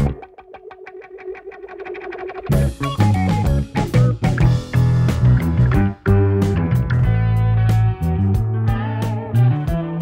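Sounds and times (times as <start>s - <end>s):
plucked electric bass notes: 0.0s - 0.4s, 2.4s - 10.0s.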